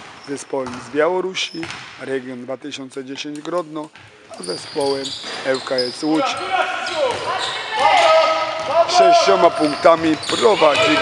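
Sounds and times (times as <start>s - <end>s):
basketball bouncing on court: 0.0s - 0.9s, 1.6s - 2.0s, 3.9s - 5.4s, 7.0s - 11.0s
voices calling out: 4.4s - 11.0s.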